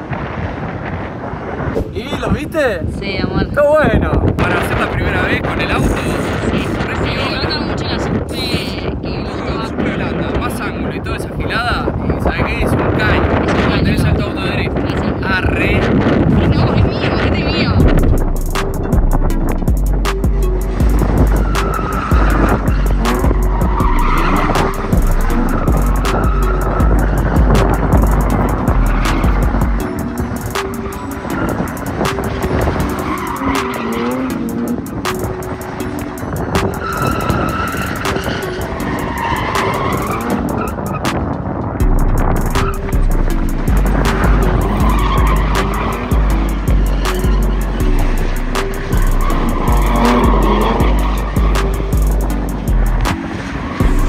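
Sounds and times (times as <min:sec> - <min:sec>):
car engines revving: 0:04.3 - 0:54.0
music with heavy bass line: 0:16.3 - 0:54.0
tyres squealing: 0:21.4 - 0:34.8, 0:35.5 - 0:41.0, 0:43.6 - 0:52.4.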